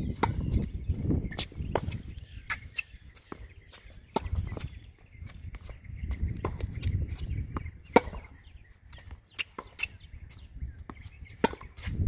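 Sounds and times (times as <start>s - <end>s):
tennis ball bouncing: 0.2s - 0.7s, 1.3s - 12.0s
racket striking tennis ball: 4.1s - 4.6s, 7.9s - 10.0s, 11.4s - 12.0s.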